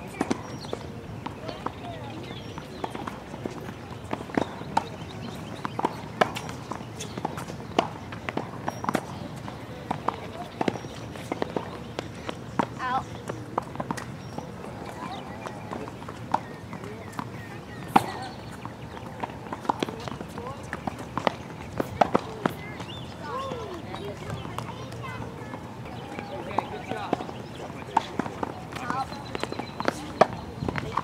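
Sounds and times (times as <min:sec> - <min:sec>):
faint voices talking: 0:00.0 - 0:31.0
racquets striking tennis ball: 0:00.1 - 0:25.0, 0:25.9 - 0:31.0
footsteps on hard court: 0:00.1 - 0:31.0.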